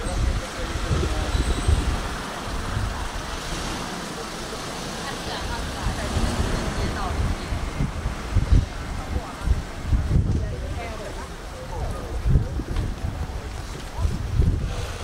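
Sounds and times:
indistinct talk of passers-by: 0.0s - 15.0s
steady low rumble: 5.4s - 15.0s.

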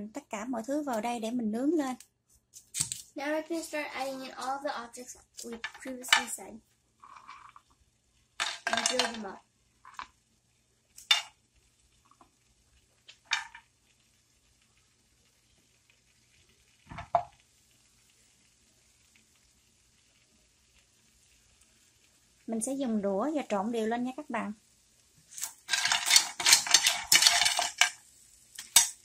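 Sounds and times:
faint steady hiss: 0.0s - 29.0s.

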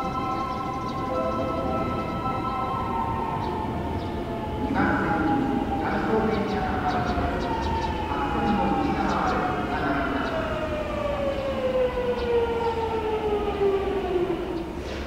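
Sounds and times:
train inverter whining: 0.0s - 15.0s.

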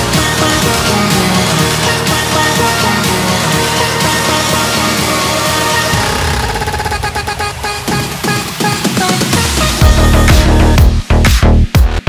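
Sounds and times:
held synth chords: 0.0s - 11.0s.

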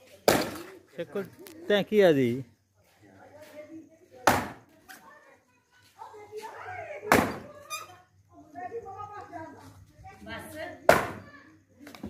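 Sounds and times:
axe striking a log: 0.2s - 0.6s, 4.2s - 4.6s, 7.1s - 7.4s.

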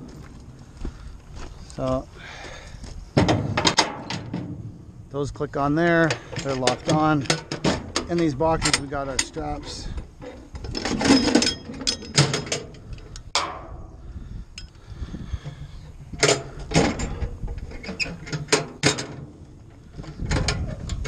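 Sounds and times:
steady low hum: 0.0s - 21.0s
metal hooks clanking and rattling: 6.0s - 13.6s.

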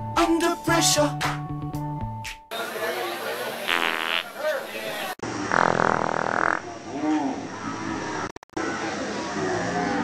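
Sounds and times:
crowd chatter: 2.5s - 5.2s
farts: 3.7s - 4.3s, 5.2s - 7.2s.

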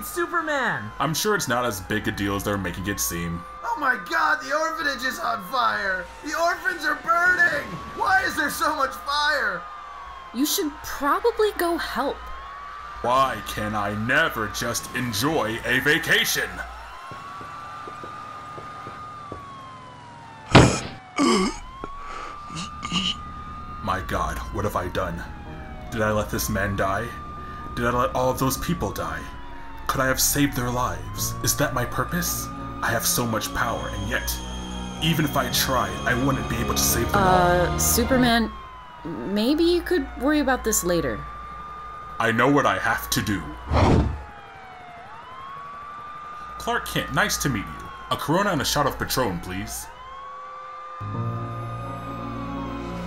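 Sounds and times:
emergency siren wailing: 0.0s - 53.0s
sudden loud burst of noise: 43.7s - 44.3s.

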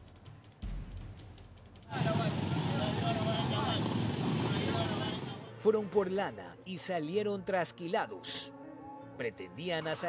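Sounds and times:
motor vehicles running: 1.9s - 5.5s
people's voices: 1.9s - 5.7s.

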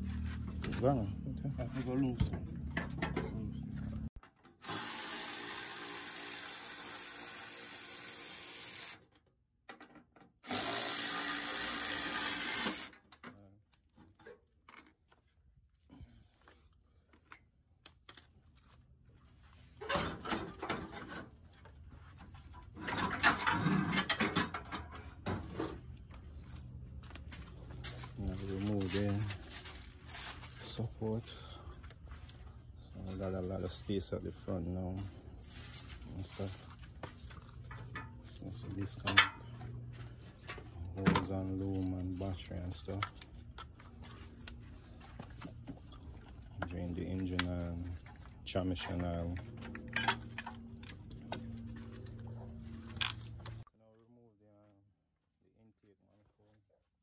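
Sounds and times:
handheld power tool running: 4.6s - 9.0s, 10.4s - 13.0s.

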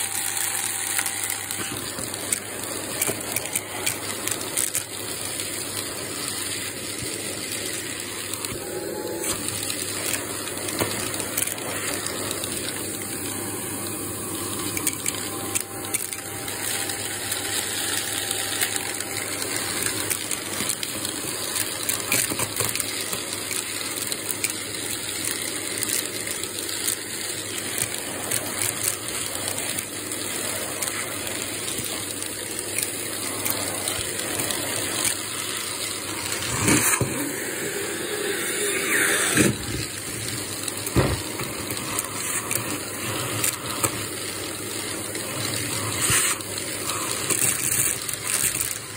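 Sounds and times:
debris clicking in vacuum: 0.0s - 48.9s
vacuum cleaner running: 0.0s - 48.9s.

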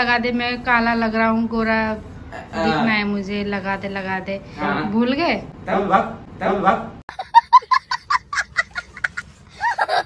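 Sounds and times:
young boy laughing: 7.1s - 10.0s.

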